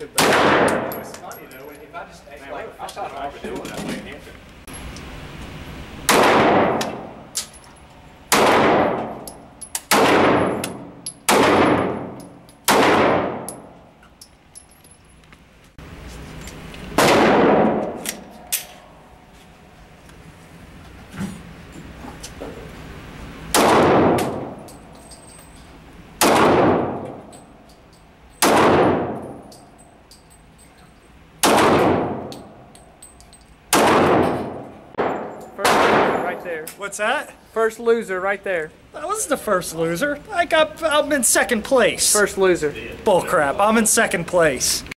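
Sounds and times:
pistol shots echoing indoors: 0.2s - 1.1s, 6.1s - 7.2s, 8.3s - 9.2s, 9.8s - 13.8s, 17.0s - 18.6s, 23.5s - 24.6s, 26.2s - 27.4s, 28.4s - 29.5s, 31.4s - 32.6s, 33.7s - 36.4s.

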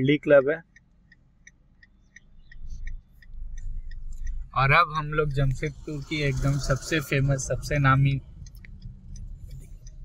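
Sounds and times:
moving car rumble: 0.0s - 10.0s.

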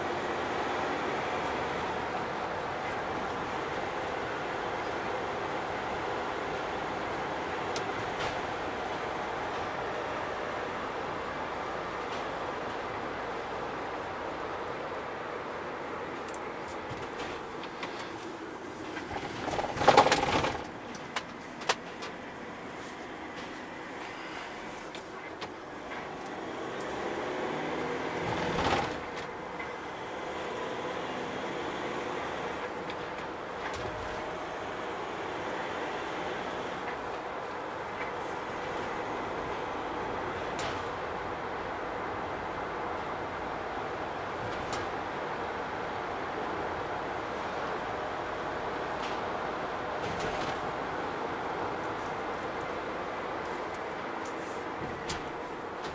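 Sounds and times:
van engine and road noise: 0.0s - 55.9s.

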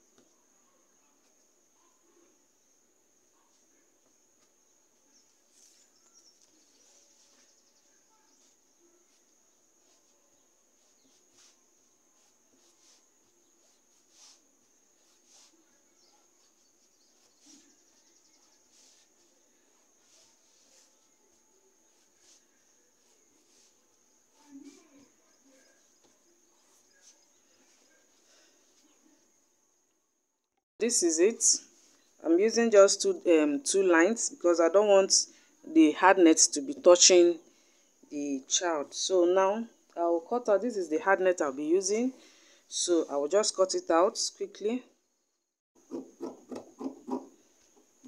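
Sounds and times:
fabric rustling: 4.4s - 29.2s.

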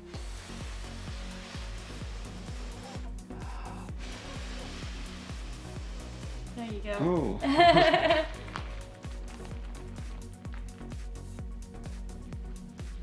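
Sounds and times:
person blowing on ember: 0.0s - 6.6s
background music with low beat: 0.0s - 13.0s.

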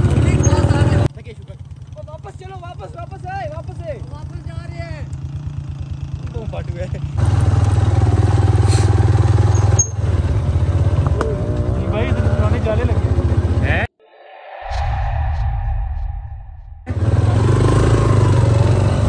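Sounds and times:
motorcycle engine running: 0.0s - 13.8s.

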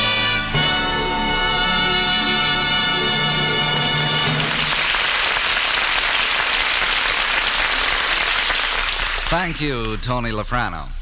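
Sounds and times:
studio audience applauding: 3.5s - 10.0s.

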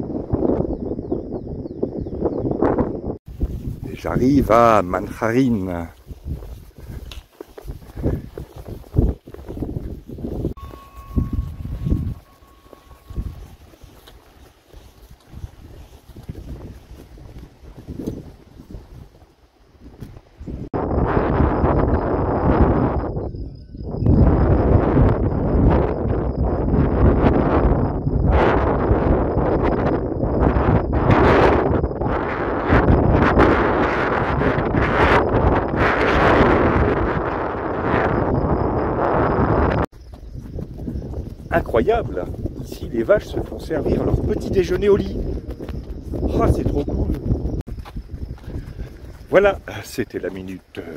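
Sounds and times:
wind buffeting microphone: 0.0s - 50.9s.

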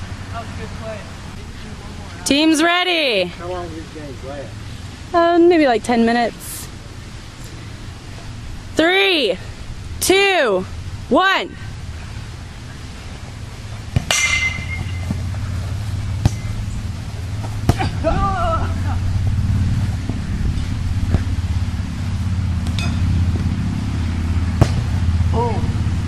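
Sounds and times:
steady low rumble: 3.3s - 26.0s
bat striking ball with ringing ping: 14.0s - 15.2s, 22.7s - 23.2s.

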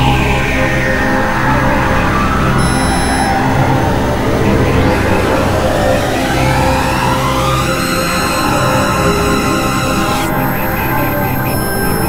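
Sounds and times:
dense synthesizer drone: 0.0s - 12.0s
rising synth sweep: 2.1s - 12.0s
high whistle: 2.6s - 3.6s.

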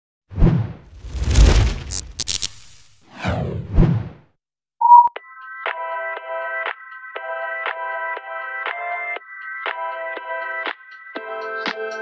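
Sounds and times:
swooshes: 0.4s - 4.2s
brief tone: 4.8s - 5.2s.

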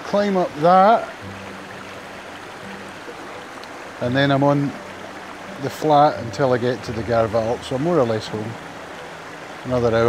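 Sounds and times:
stream flowing over rocks: 0.0s - 10.0s.

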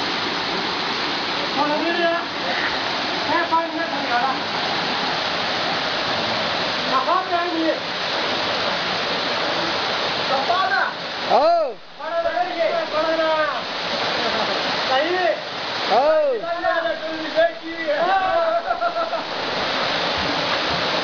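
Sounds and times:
waterfall rushing: 0.0s - 21.0s
men shouting: 16.4s - 19.3s.

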